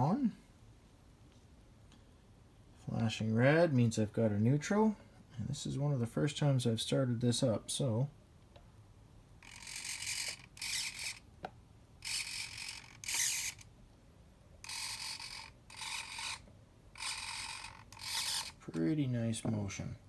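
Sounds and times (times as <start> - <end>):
model boat motors whirring: 9.4 - 11.2, 12.0 - 13.7, 14.6 - 18.6.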